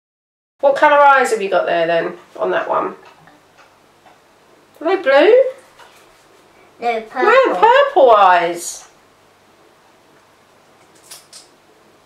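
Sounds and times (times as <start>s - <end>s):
woman speaking: 0.6s - 3.0s, 4.8s - 5.6s, 7.1s - 8.9s.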